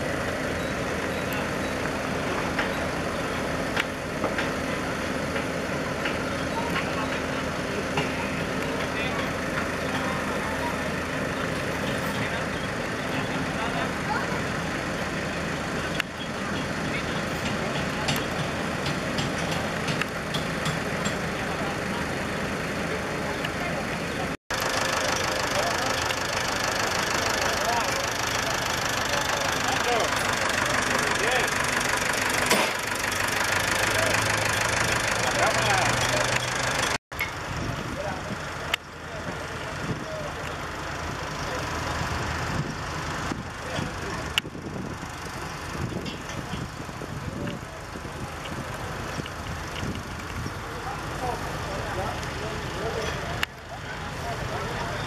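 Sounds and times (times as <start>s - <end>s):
crowd chatter: 0.0s - 37.0s, 37.6s - 55.0s
tractor engines idling: 0.0s - 55.0s.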